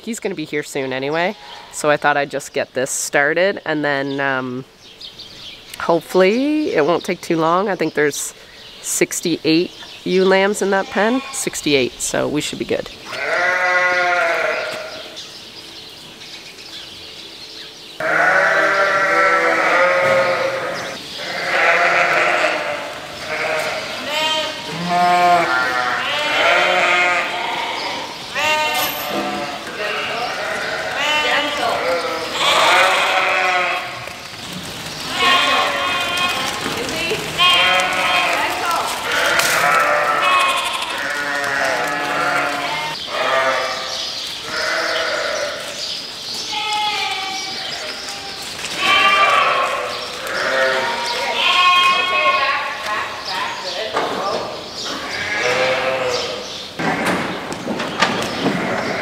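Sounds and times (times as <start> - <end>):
lambs bleating: 10.6 - 11.5, 13.1 - 15.1, 18.0 - 34.1, 35.0 - 45.8, 46.5 - 53.5, 54.9 - 57.2.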